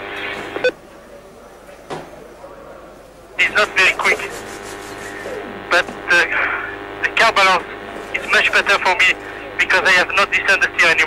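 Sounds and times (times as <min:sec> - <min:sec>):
radio channel hum: 0:00.0 - 0:01.5, 0:02.7 - 0:11.0
radio click: 0:03.5 - 0:06.2.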